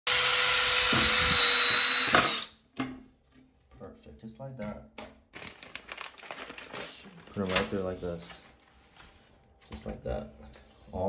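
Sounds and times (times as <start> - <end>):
cordless drill boring into ceramic: 0.0 - 2.5.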